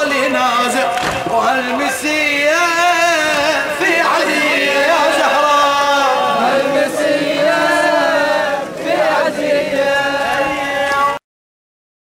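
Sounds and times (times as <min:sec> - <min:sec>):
men chanting a lament: 0:00.0 - 0:11.2.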